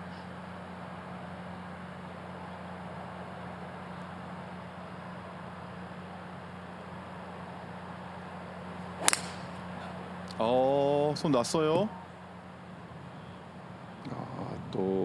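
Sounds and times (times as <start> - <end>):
low hum of outdoor background: 0.0 - 15.0
golf club striking ball: 9.0 - 9.9.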